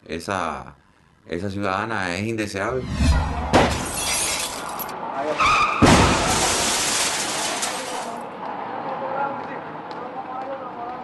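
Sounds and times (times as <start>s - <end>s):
noisy whooshes: 2.6s - 3.9s
sudden hit: 2.8s - 4.0s, 5.8s - 6.7s.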